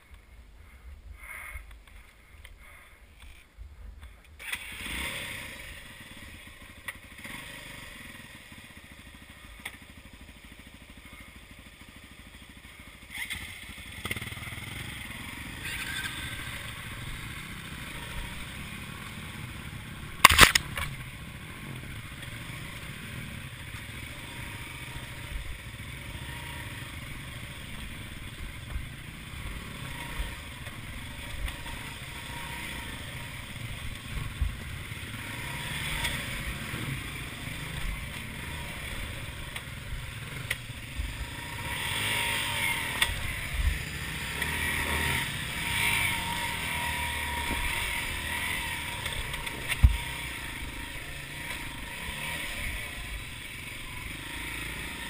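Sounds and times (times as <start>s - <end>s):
dirt bike engine at low revs: 0.0s - 55.0s.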